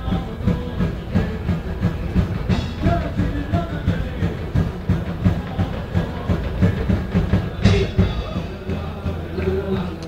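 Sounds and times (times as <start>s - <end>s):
medieval-style folk band: 0.0s - 10.0s
steady drumbeat: 0.0s - 10.0s.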